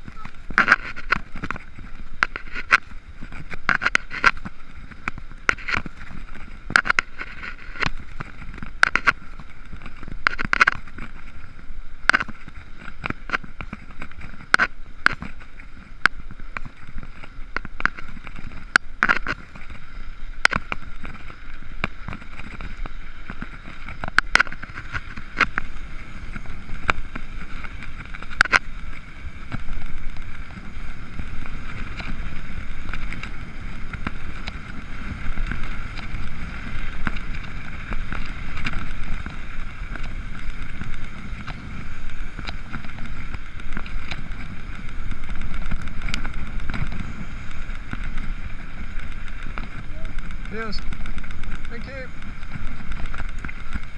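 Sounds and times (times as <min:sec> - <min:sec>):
bike rattling clicks: 0:00.0 - 0:53.9
bike tyre rumble on trail: 0:00.0 - 0:53.9.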